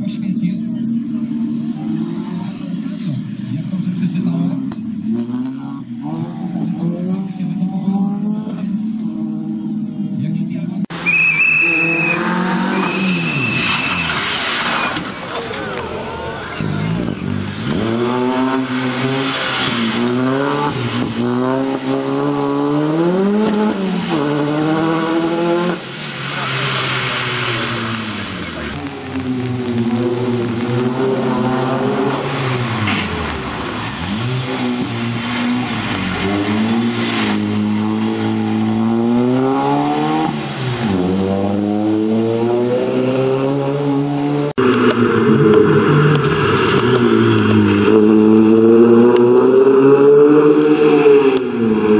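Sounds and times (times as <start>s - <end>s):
rally car engine revving: 0.0s - 51.9s.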